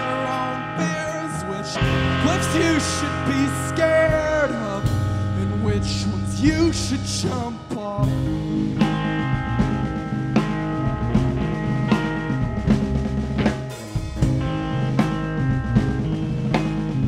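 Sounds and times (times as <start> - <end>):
bass guitar: 0.0 - 17.0
drum kit snare and bass drum: 0.0 - 17.0
electric guitar: 0.0 - 17.0.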